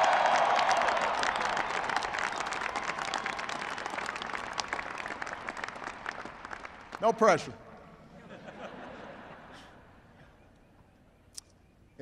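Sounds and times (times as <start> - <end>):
crowd cheering: 0.0 - 7.2
crowd applauding: 0.0 - 7.5.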